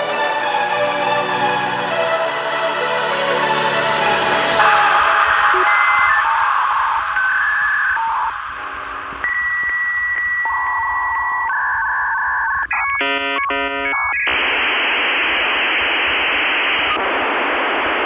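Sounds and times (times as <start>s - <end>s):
modem hiss: 4.2s - 18.0s
dial-up modem tones: 4.6s - 18.0s.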